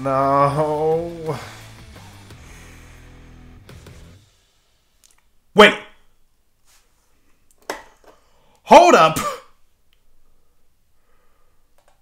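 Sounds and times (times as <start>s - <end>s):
man exclaiming loudly: 5.6s - 6.0s, 8.7s - 9.4s.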